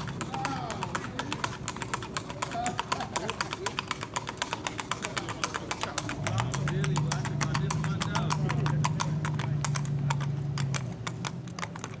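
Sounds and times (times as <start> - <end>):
hooves on asphalt road: 0.0 - 12.0.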